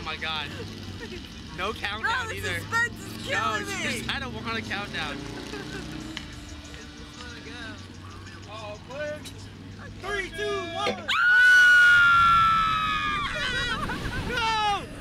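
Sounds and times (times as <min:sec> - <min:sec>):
quiet laughing: 0:00.3 - 0:01.6, 0:05.1 - 0:08.5, 0:13.2 - 0:15.0
excited shouting: 0:02.0 - 0:04.1, 0:10.0 - 0:15.0.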